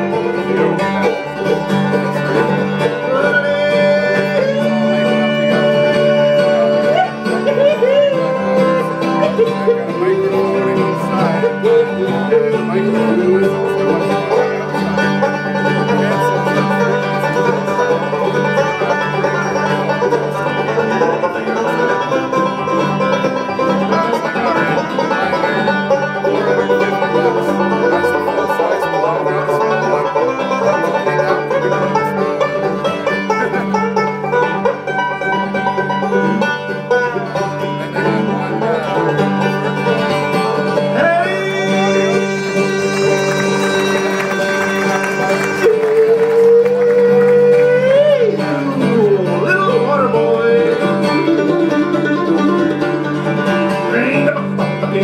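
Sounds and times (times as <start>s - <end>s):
bluegrass band playing: 0.0s - 55.0s.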